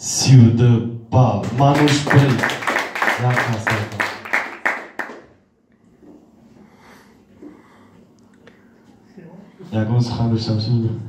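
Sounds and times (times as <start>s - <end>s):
audience clapping: 1.4s - 5.3s.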